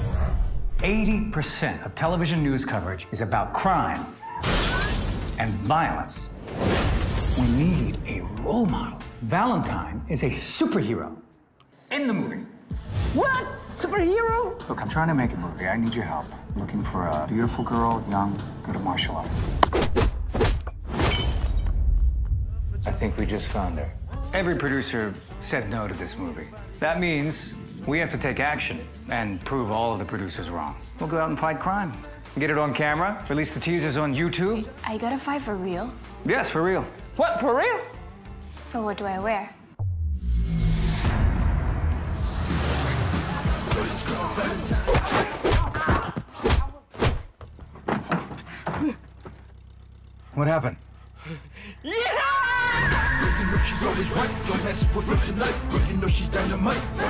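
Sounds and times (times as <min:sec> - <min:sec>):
glass shattering: 0:04.4 - 0:05.8, 0:06.5 - 0:07.9, 0:20.7 - 0:21.8
low rumble: 0:21.6 - 0:25.0, 0:39.8 - 0:43.4.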